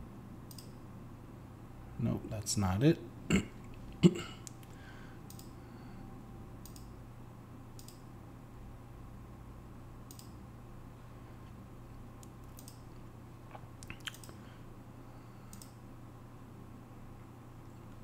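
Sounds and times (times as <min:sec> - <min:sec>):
steady low hum: 0:00.0 - 0:18.0
faint computer mouse clicks: 0:00.5 - 0:00.8, 0:05.3 - 0:05.5, 0:06.6 - 0:06.9, 0:07.8 - 0:08.0, 0:10.1 - 0:10.4, 0:12.2 - 0:12.8, 0:15.5 - 0:15.8
man clearing his throat: 0:03.3 - 0:04.4.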